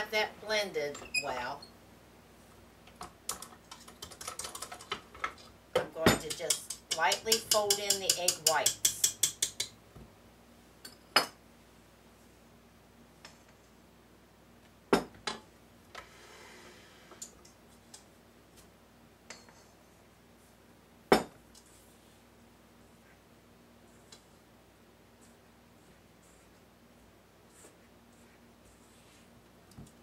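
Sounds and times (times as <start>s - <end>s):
utensils knocking on metal bowl: 5.8s - 9.8s.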